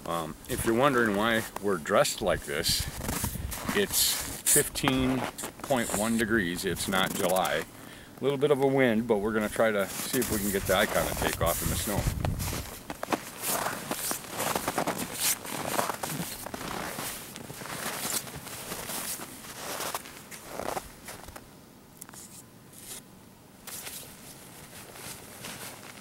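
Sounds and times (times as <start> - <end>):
footsteps in deep snow: 2.5 - 7.6, 9.8 - 21.4, 23.6 - 26.0.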